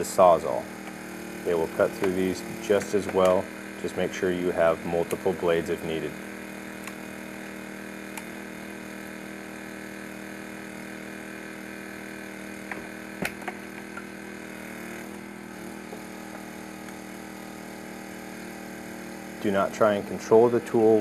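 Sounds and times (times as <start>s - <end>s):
small gas engine running: 0.0s - 21.0s.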